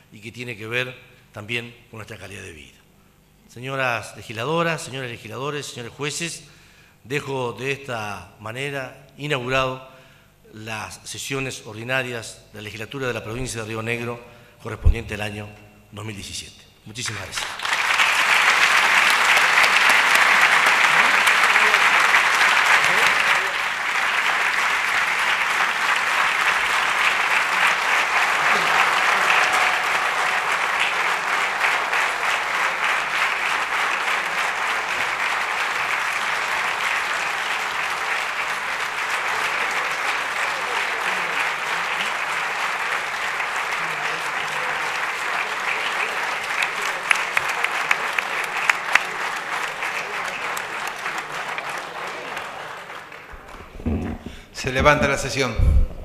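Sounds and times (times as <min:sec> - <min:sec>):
sustained applause: 0:17.1 - 0:55.4.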